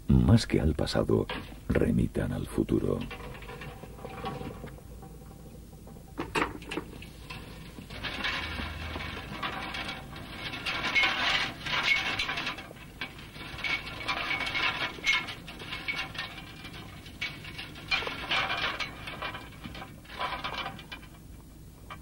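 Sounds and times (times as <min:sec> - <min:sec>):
crop rattling over wire sieve: 0:01.2 - 0:22.0.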